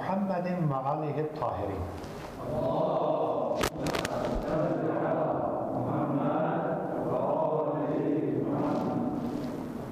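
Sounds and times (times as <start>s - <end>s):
men chanting in unison: 2.4s - 9.3s.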